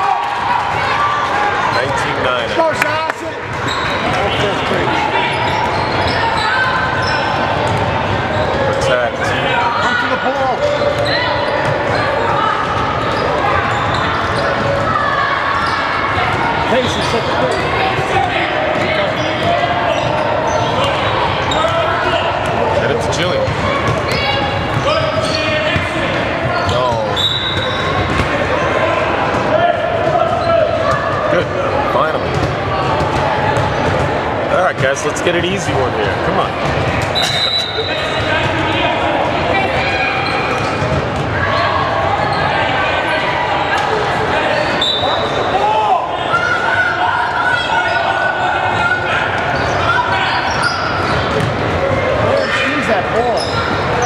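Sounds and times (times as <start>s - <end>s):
indistinct voices in hall: 0.0s - 54.0s.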